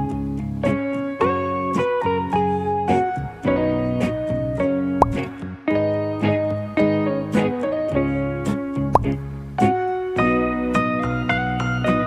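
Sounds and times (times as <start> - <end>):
light background music: 0.0 - 12.0
short rising plop: 5.0 - 5.3, 9.0 - 9.2.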